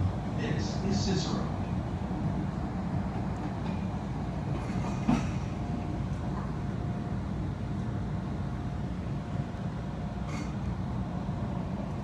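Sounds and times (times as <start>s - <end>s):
low steady rumbling: 0.0s - 12.0s.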